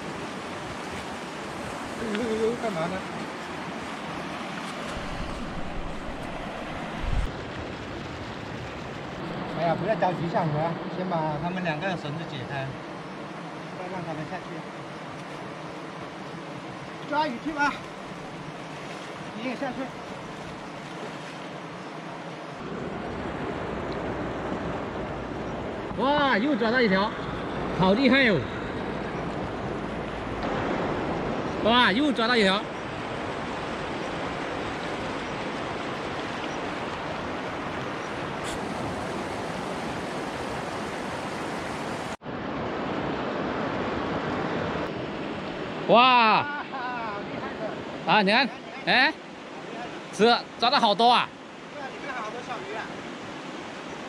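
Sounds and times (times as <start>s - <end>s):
river water rushing over weir: 0.0s - 54.0s.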